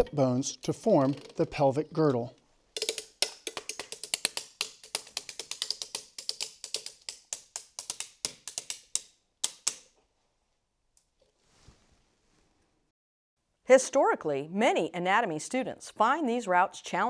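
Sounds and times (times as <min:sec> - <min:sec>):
mallets tapping skeleton bones: 0:02.8 - 0:09.9.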